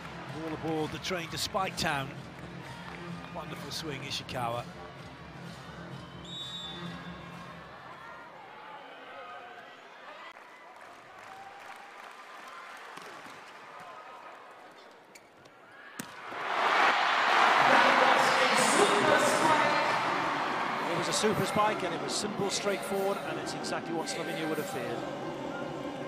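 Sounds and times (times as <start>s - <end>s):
crowd murmur of voices: 17.4s - 26.0s.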